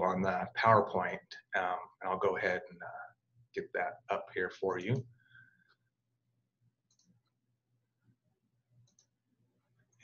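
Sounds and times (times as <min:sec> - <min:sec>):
faint clicks: 0:06.8 - 0:07.4, 0:08.8 - 0:09.2.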